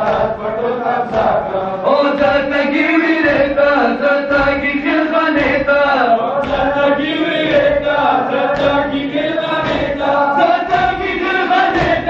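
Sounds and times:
chest-beating thuds: 0.0s - 12.0s
men chanting together: 0.0s - 12.0s.

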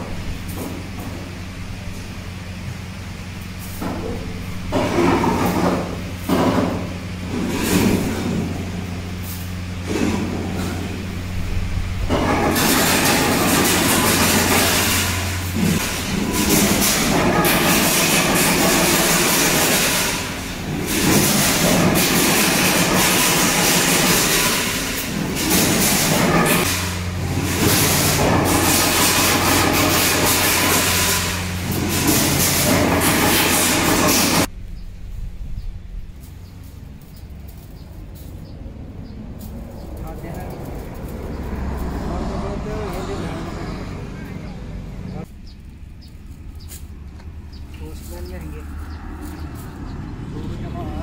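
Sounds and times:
mechanical rumble: 0.0s - 51.0s
wire mesh rattling on concrete: 12.1s - 34.5s, 36.1s - 43.2s
low hum: 31.2s - 51.0s
passing vehicle rumble: 34.4s - 51.0s
indistinct voices: 37.9s - 45.4s, 46.1s - 51.0s.

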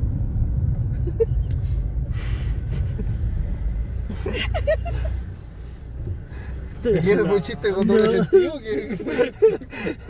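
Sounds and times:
car engine rumble from inside: 0.0s - 10.0s.

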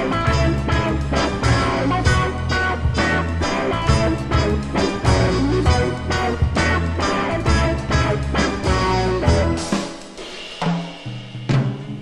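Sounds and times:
rock song instrumental: 0.0s - 12.0s.

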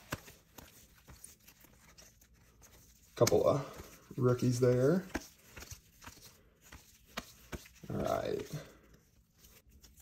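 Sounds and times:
cards being flipped: 0.0s - 10.0s.

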